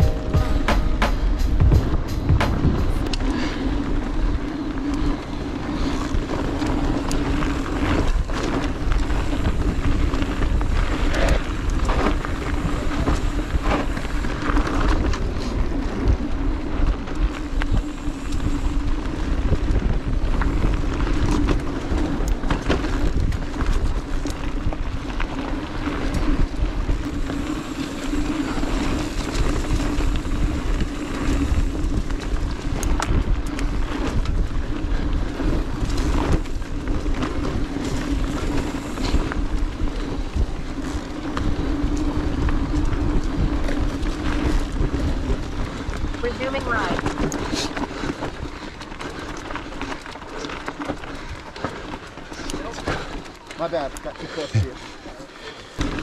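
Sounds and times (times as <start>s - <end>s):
wind on microphone: 0.0s - 48.7s
bike rattles and knocks: 0.0s - 55.0s, 55.8s - 56.0s
tyres rolling over dirt: 1.4s - 56.0s.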